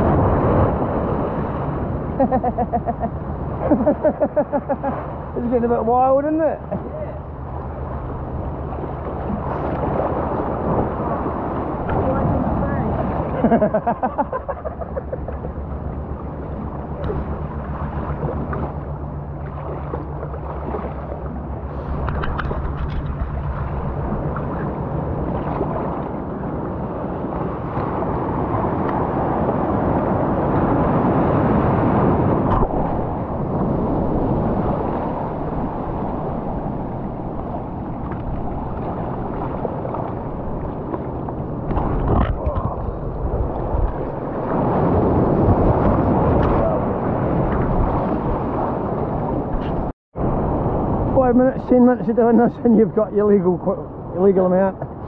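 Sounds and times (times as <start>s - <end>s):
sea surf washing around rocks: 0.0s - 55.0s.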